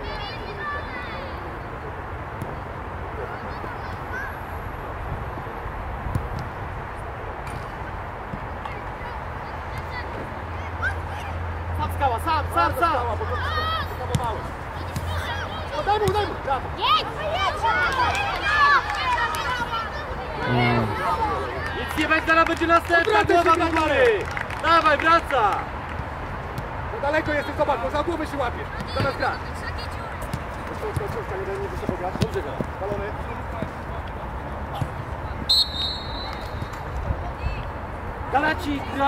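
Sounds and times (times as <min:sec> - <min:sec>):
outdoor background noise: 0:00.0 - 0:39.0
players and coaches shouting: 0:10.8 - 0:24.0.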